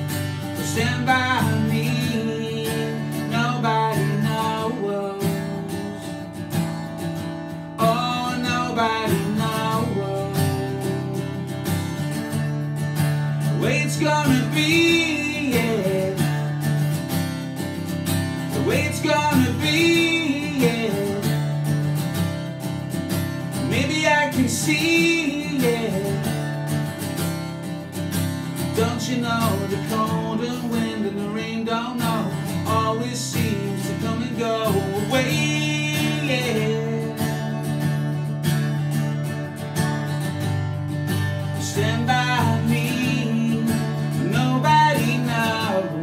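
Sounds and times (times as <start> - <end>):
acoustic guitar strumming: 0.0 - 46.0
man singing: 0.5 - 6.4, 7.8 - 11.6, 13.4 - 16.7, 18.5 - 21.9, 23.5 - 26.6, 28.7 - 37.8, 41.4 - 46.0.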